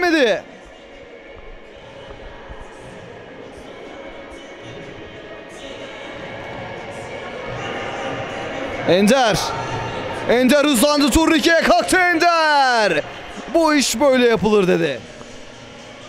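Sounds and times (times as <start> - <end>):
faint music: 0.0 - 16.0
indistinct voices echoing: 0.0 - 16.0.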